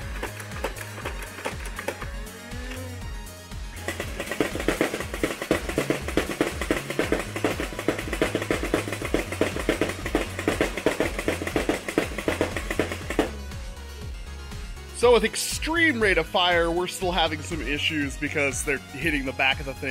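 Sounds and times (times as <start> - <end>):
background music: 0.0 - 19.9
toy blaster firing rapidly: 3.8 - 13.4.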